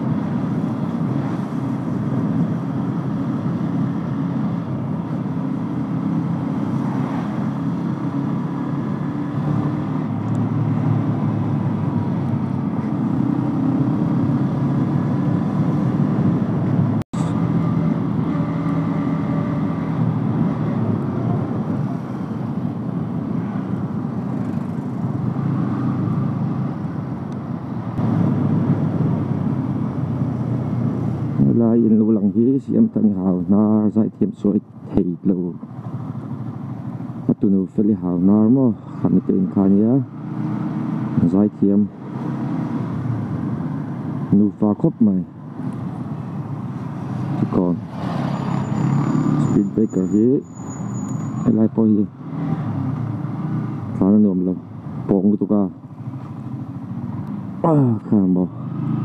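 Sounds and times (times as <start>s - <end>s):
rush of riding wind: 0.0s - 37.4s, 38.0s - 59.0s.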